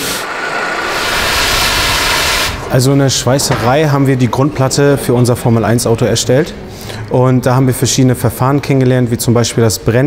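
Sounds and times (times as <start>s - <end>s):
gas torch flame hissing: 0.0s - 3.7s.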